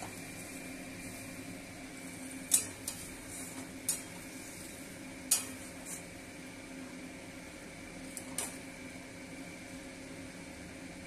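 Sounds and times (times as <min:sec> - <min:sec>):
curry simmering and sizzling: 0:00.0 - 0:09.2
steady low hum: 0:00.0 - 0:11.0
metal spatula scraping pan: 0:02.5 - 0:06.1.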